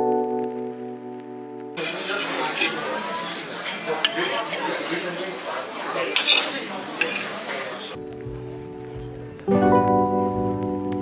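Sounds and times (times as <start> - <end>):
cutlery clinking on china plate: 1.8 - 5.2, 6.0 - 8.0.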